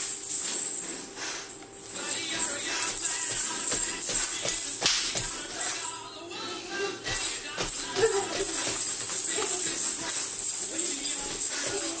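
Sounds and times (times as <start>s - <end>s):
hip skirt coins jingling: 0.0s - 12.0s.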